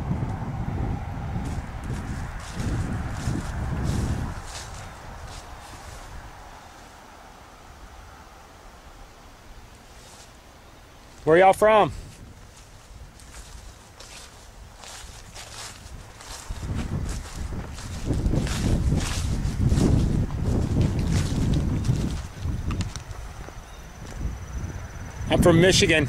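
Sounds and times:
wind rumbling on microphone: 0.0s - 10.2s, 11.1s - 26.0s
footsteps through dry grass: 1.3s - 7.0s, 9.8s - 10.4s, 11.9s - 24.3s.

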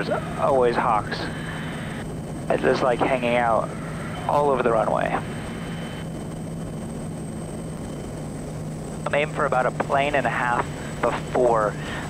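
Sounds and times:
turboprop engine drone in cockpit: 0.0s - 12.0s.

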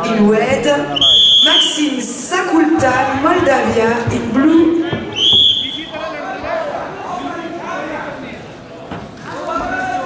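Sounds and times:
referee's whistle blast: 1.0s - 1.8s, 5.1s - 6.0s.

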